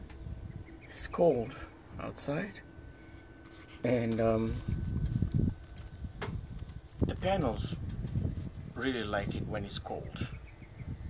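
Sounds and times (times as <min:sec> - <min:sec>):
wind and handling rumble on microphone: 0:00.0 - 0:11.0.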